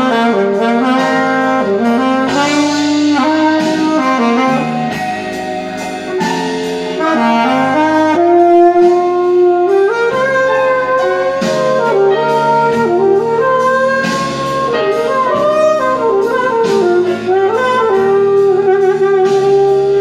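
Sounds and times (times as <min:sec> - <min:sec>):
alto saxophone playing blues: 0:00.0 - 0:20.0
backing track: 0:00.0 - 0:20.0.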